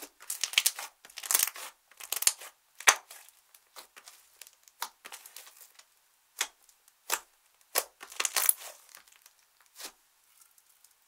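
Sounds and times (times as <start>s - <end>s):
slime squeezed by hand crackling: 6.4s - 10.0s.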